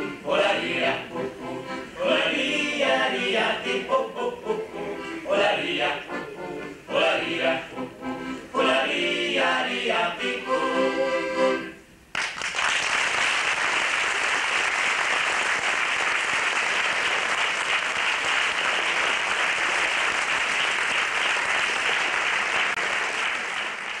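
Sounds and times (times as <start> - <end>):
audience applause: 12.2 - 24.0.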